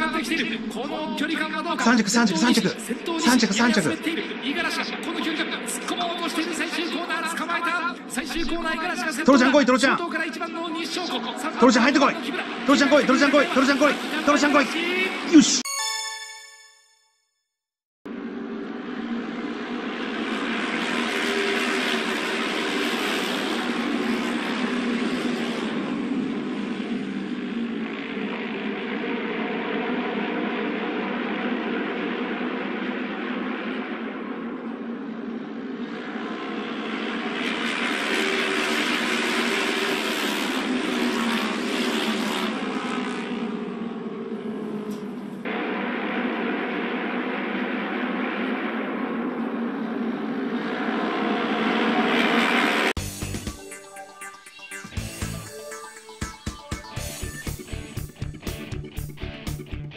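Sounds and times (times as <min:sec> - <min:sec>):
racing motorcycle engines droning: 0:00.0 - 0:15.6, 0:18.1 - 0:59.9.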